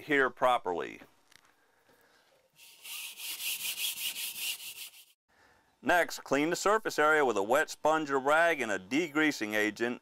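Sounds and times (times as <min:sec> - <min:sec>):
scuff pad scrubbing a panel: 0:02.6 - 0:05.1.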